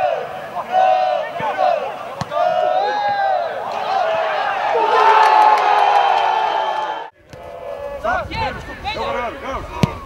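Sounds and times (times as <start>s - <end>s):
football crowd cheering: 0.0s - 10.0s.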